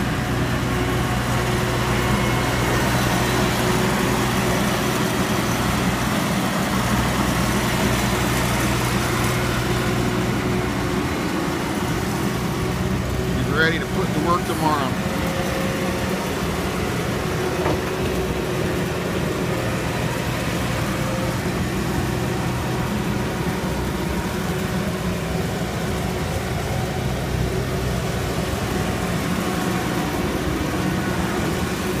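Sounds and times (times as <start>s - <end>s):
diesel engine running: 0.0s - 32.0s.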